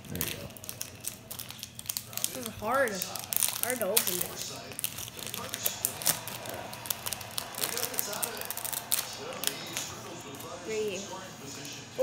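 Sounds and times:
plastic wrapper crinkling and tearing: 0:00.0 - 0:10.6.

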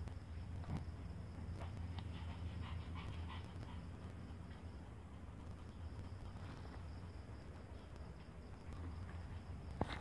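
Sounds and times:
low steady hum: 0:00.0 - 0:10.0
dog panting: 0:02.0 - 0:04.2.

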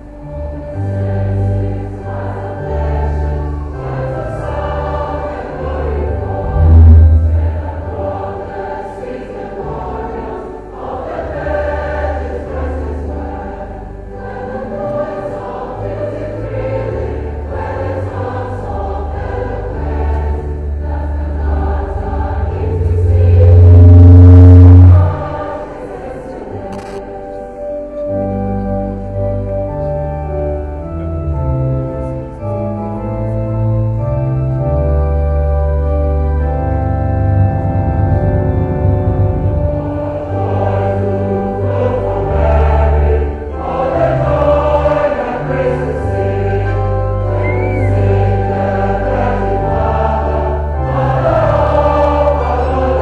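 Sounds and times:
choir singing a hymn: 0:00.0 - 0:53.0
organ with sustained bass notes: 0:00.0 - 0:53.0.

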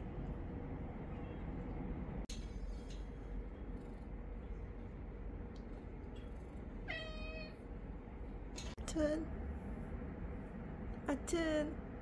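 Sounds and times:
cat meowing: 0:06.8 - 0:07.6.

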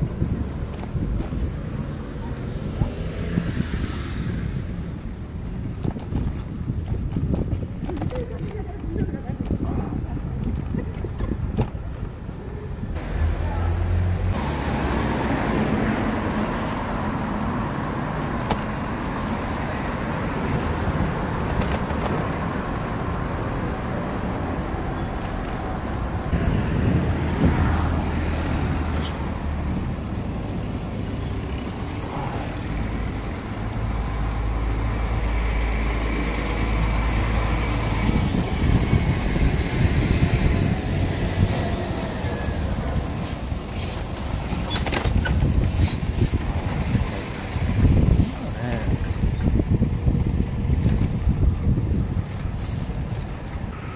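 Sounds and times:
road traffic passing: 0:00.0 - 0:53.9.

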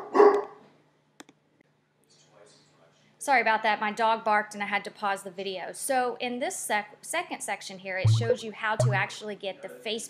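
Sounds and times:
dog barking: 0:00.0 - 0:00.6.

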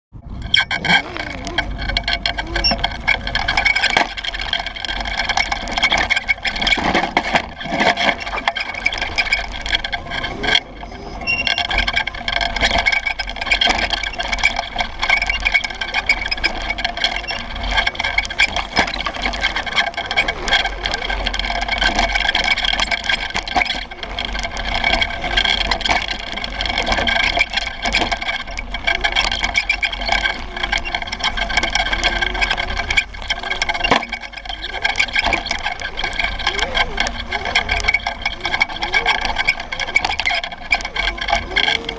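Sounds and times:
off-road vehicle high whine: 0:00.2 - 0:41.9
tyre and wind noise: 0:00.2 - 0:41.9.

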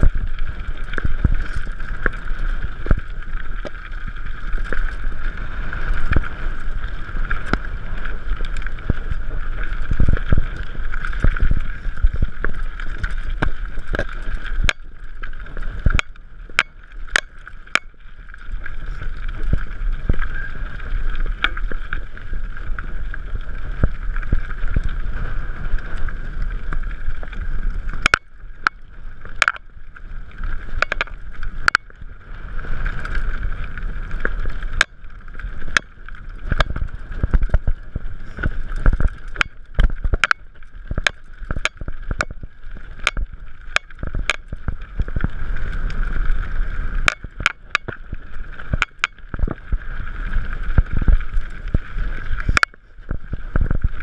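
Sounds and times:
bike knocking and rattling on stones: 0:00.0 - 0:54.0
bike tyre rumble: 0:00.0 - 0:54.0.

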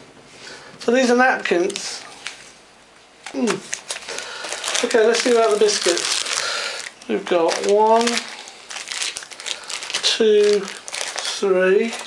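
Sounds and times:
plastic wrappers crinkling: 0:01.5 - 0:02.4, 0:03.2 - 0:12.0.

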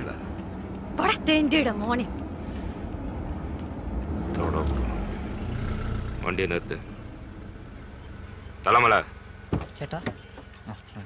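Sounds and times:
vehicle engine rumble: 0:00.0 - 0:11.0.

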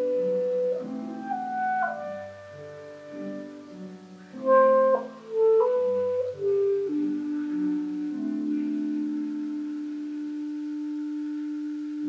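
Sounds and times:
clarinet holding long note: 0:00.0 - 0:12.0.

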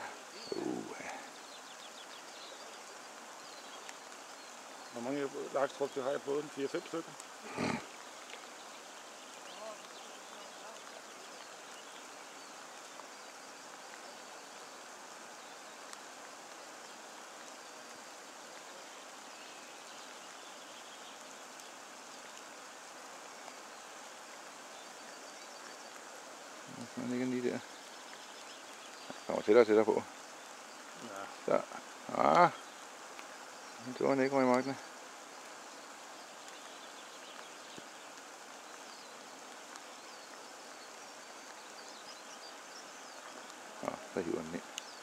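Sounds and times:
person's voice: 0:00.4 - 0:01.3.

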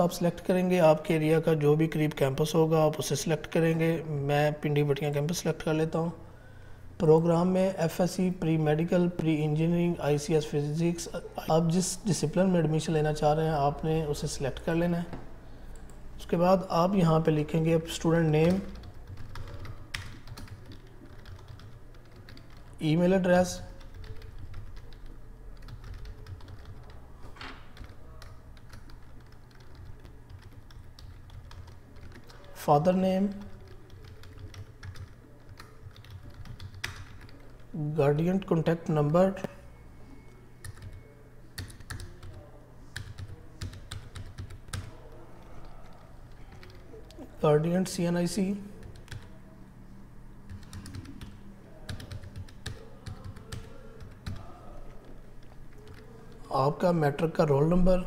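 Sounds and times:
computer keyboard typing: 0:15.7 - 0:37.7, 0:40.6 - 0:47.2, 0:48.8 - 0:49.4, 0:50.4 - 0:56.4.

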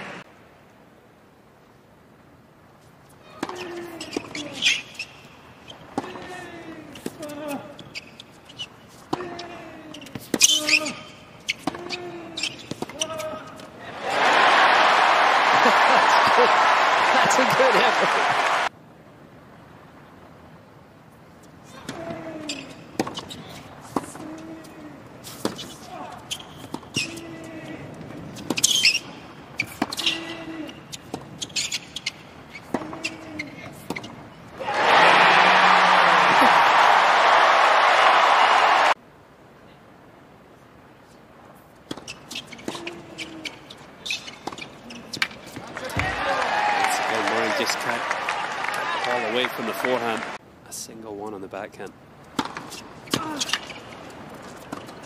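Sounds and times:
crowd applause and cheering: 0:14.0 - 0:18.7, 0:34.6 - 0:39.0, 0:45.7 - 0:50.4
tennis ball bouncing on court: 0:23.0 - 0:23.3, 0:52.3 - 0:53.7.

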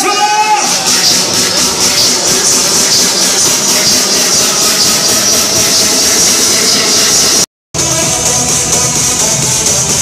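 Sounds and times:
crowd noise: 0:00.0 - 0:10.0
loud dance music: 0:00.0 - 0:10.0.

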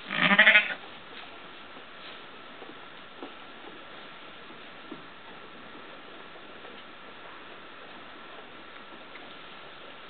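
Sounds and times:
sheep bleating: 0:00.0 - 0:00.8.

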